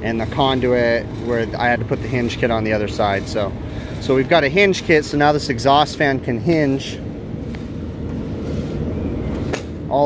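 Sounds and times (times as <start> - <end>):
low rumble of machinery: 0.0 - 10.0.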